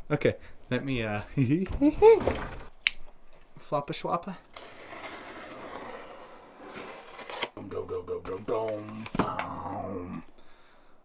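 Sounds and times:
box cutter slitting tape: 4.6s - 7.6s
man's drawn-out voice: 7.6s - 10.3s.

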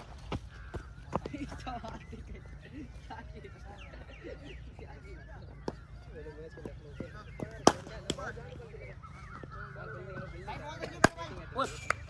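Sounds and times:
bat striking cricket ball: 7.4s - 8.4s, 10.8s - 12.0s.

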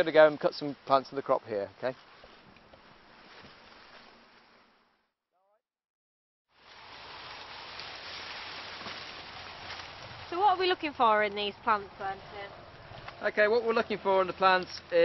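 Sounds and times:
wind rustling through maize leaves: 6.5s - 15.0s.

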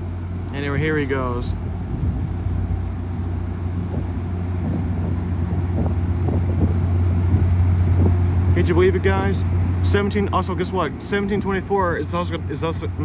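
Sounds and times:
diesel locomotive drone: 0.0s - 13.0s.

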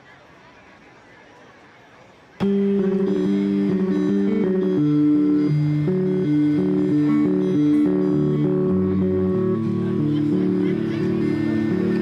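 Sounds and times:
picked acoustic guitar: 2.4s - 12.0s.

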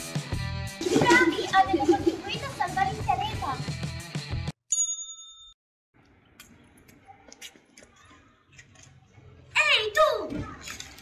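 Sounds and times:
background music: 0.0s - 4.5s
bell-like ding: 4.7s - 5.6s.

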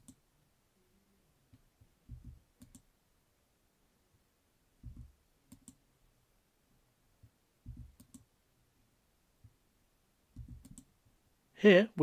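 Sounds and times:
computer mouse clicks: 0.0s - 0.2s, 1.5s - 2.9s, 4.8s - 5.8s, 7.7s - 8.3s, 10.4s - 10.9s.

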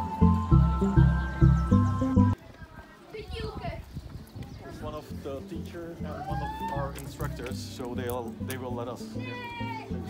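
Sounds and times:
footsteps on grass and stones: 2.4s - 10.0s.

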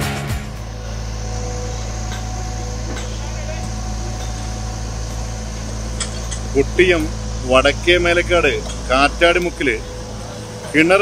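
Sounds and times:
diesel engine humming: 0.0s - 11.0s.

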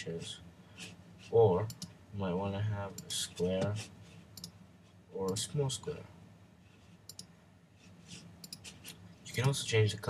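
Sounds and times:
computer mouse clicks: 1.6s - 2.0s, 4.3s - 4.6s, 7.1s - 7.3s, 8.1s - 9.6s.

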